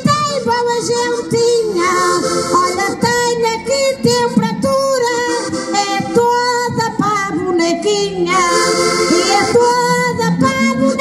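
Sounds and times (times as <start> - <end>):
accordions playing chords: 0.0 - 11.0
woman singing into microphone: 0.0 - 11.0.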